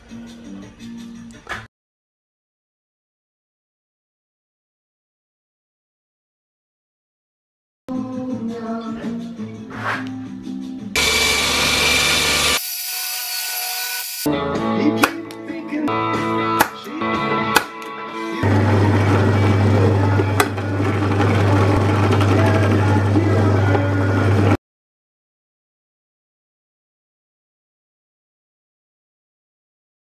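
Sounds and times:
background music: 0:00.0 - 0:01.7, 0:07.9 - 0:11.0, 0:14.3 - 0:24.6
drill press motor hum: 0:11.0 - 0:12.6
belt sander running: 0:11.0 - 0:14.3, 0:18.4 - 0:24.5.

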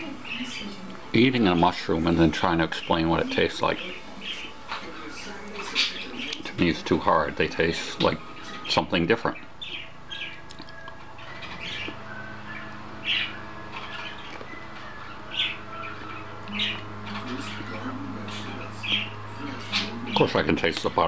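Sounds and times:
steady low hum: 0:00.0 - 0:21.0
parrot squawking and chirping: 0:01.5 - 0:20.5.

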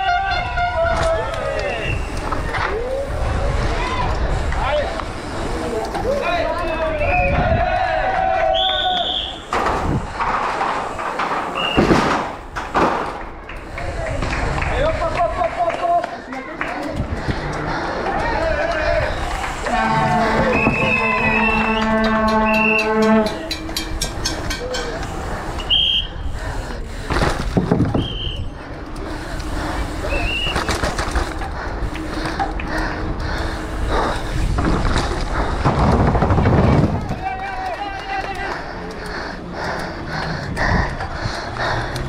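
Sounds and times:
spectators shouting: 0:00.0 - 0:09.6, 0:13.6 - 0:26.4, 0:35.6 - 0:38.9
rushing wind noise: 0:00.0 - 0:15.4, 0:16.9 - 0:37.7, 0:38.5 - 0:42.0
mountain bike clattering over pavement: 0:03.7 - 0:26.0, 0:26.6 - 0:39.1
held horn note: 0:19.5 - 0:24.5.

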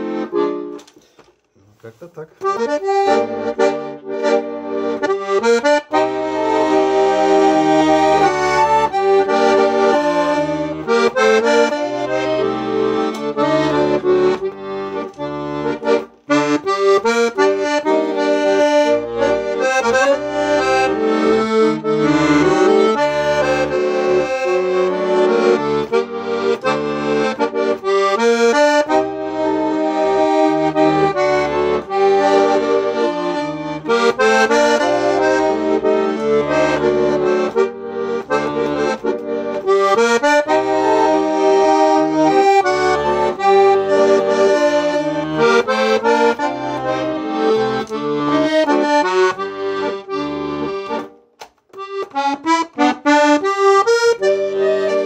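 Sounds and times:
button accordion playing a tune: 0:00.0 - 0:55.0.

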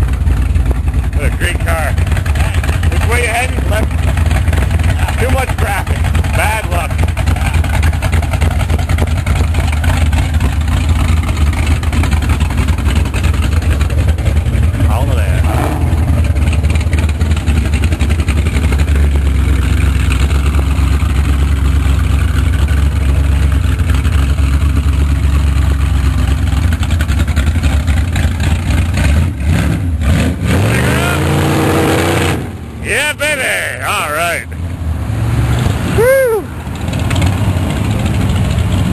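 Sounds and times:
car engine rumbling and revving: 0:00.0 - 0:38.9.

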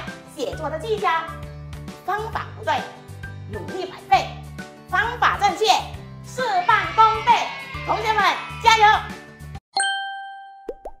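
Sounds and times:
rising plop sound effects: 0:10.6 - 0:11.0.

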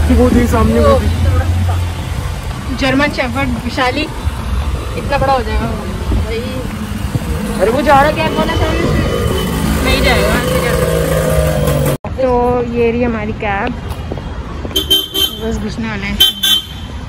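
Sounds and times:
engine hum: 0:00.0 - 0:16.9
street traffic rumble: 0:00.0 - 0:17.0
people talking indistinctly: 0:02.5 - 0:11.2.

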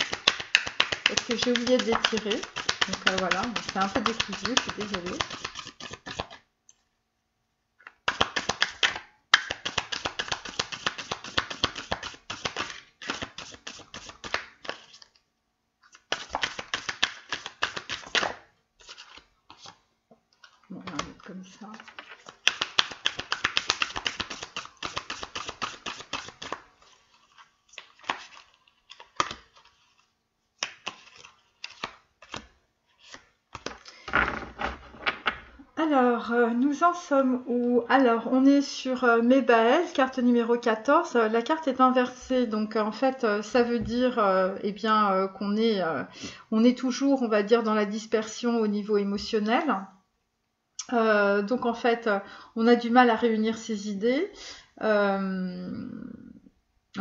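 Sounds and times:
cards shuffling: 0:00.0 - 0:06.4, 0:07.8 - 0:15.2, 0:15.9 - 0:34.8.

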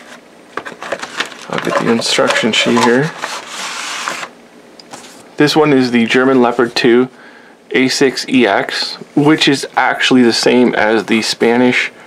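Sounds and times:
paper and plastic bags rustling: 0:00.6 - 0:04.3.

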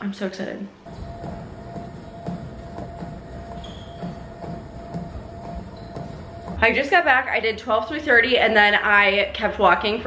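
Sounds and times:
soft footfalls: 0:00.9 - 0:07.0
treadmill motor whine: 0:00.9 - 0:07.0.

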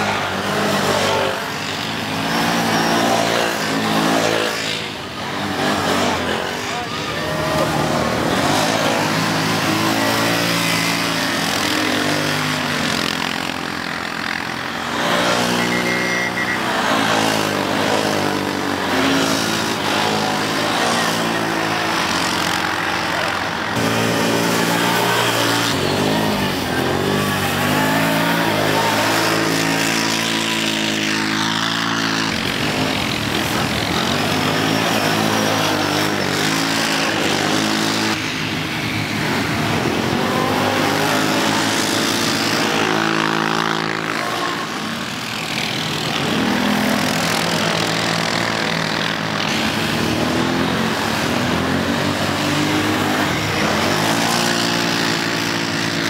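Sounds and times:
quad engines revving: 0:00.0 - 0:56.0.

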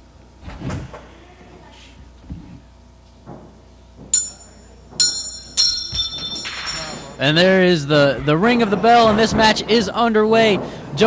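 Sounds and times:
ring bell struck: 0:04.2 - 0:07.2.

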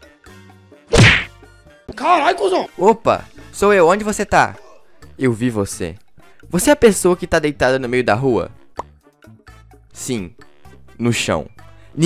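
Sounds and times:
punch impact effect: 0:00.9 - 0:01.3.

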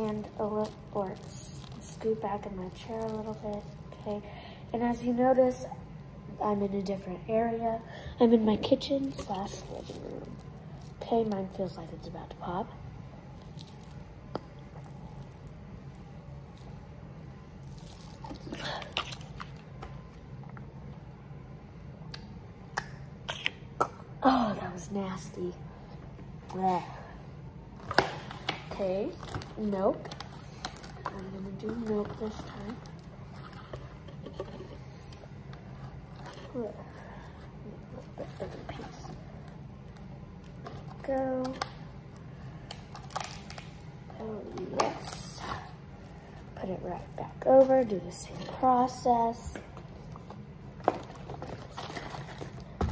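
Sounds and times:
low background hum: 0:00.0 - 0:52.9.

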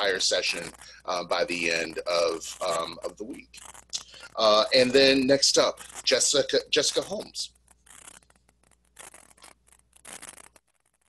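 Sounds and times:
line background hum: 0:00.0 - 0:07.8
scratchy rustling and rubbing: 0:00.0 - 0:11.0.

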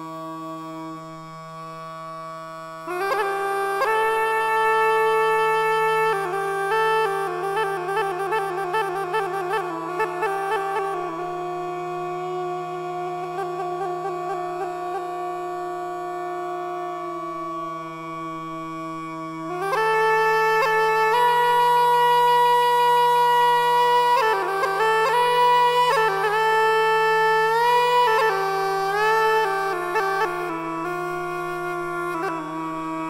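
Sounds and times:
reed wind instrument melody: 0:00.0 - 0:33.0.

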